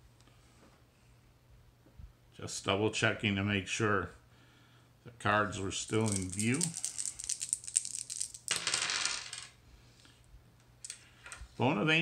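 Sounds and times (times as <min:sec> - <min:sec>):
dice rattling in hand: 0:05.8 - 0:09.5
dice tumbling across table: 0:05.8 - 0:09.6.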